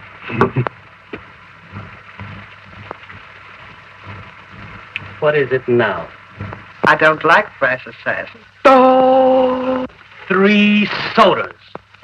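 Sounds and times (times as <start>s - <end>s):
film soundtrack hiss: 0.0s - 12.0s.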